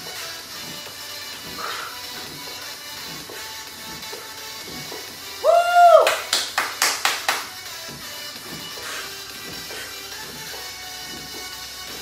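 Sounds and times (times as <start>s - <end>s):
workout music: 0.0s - 12.0s
sharp clap-like hits: 6.0s - 7.6s.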